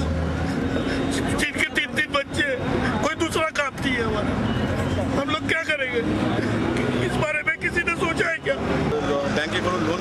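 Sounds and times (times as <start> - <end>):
street traffic noise: 0.0 - 10.0
man speaking: 7.0 - 10.0.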